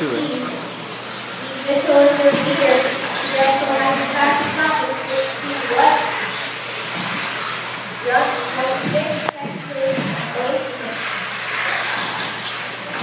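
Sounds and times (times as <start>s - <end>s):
people's voices: 0.0s - 6.6s, 8.0s - 11.1s
rc cars racing: 0.0s - 13.0s.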